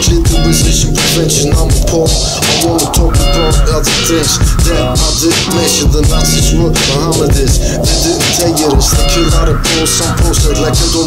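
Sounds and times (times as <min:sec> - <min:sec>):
heavy bass line: 0:00.0 - 0:11.0
hi-hats: 0:00.0 - 0:11.0
man rapping over a beat: 0:00.0 - 0:11.0.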